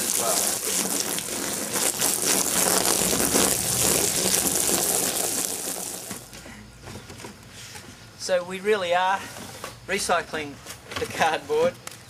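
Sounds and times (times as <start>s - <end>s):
hose spray hissing on cardboard: 0.0s - 6.4s.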